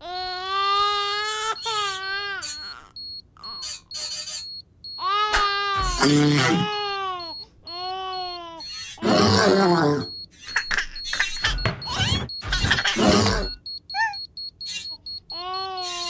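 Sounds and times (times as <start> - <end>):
cartoon baby crying: 0.0 - 3.9, 5.0 - 10.2, 11.8 - 16.0
faint high-pitched electronic beep: 2.0 - 4.6, 5.8 - 7.4, 8.2 - 16.0.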